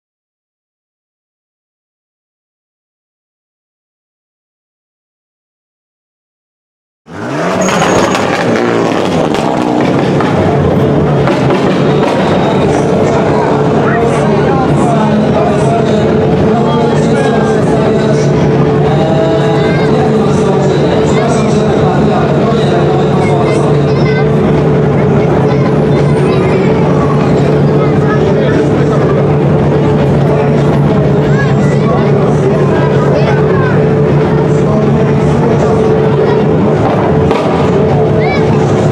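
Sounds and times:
car engine revving: 7.1s - 38.9s
people talking: 7.6s - 38.9s.

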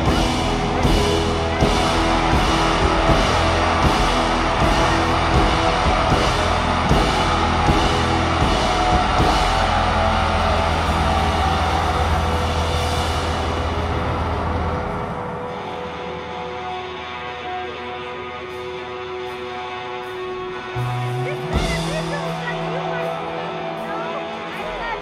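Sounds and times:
rock band playing live: 0.0s - 25.0s.

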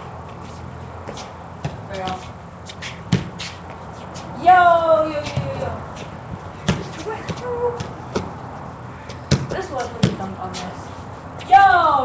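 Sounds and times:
shoes scuffing on pavement: 0.0s - 11.6s.

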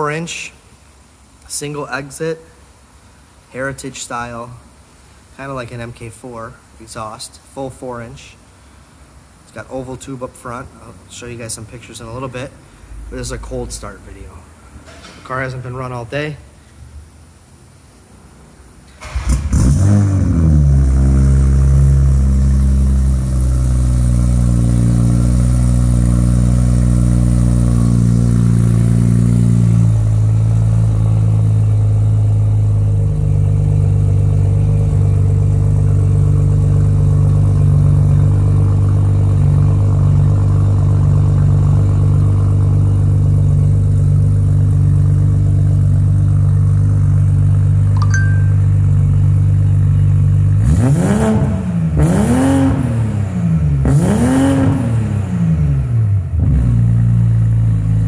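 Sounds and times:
car engine idling: 18.5s - 52.2s.

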